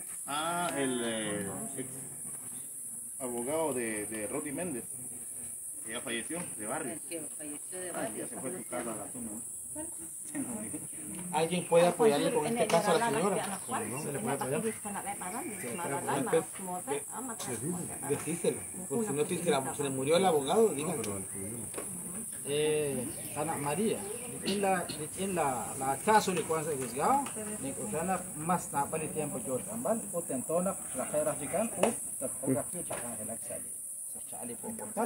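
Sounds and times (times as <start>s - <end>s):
insects hissing in trees: 0.0s - 35.0s
people talking indistinctly: 0.3s - 35.0s.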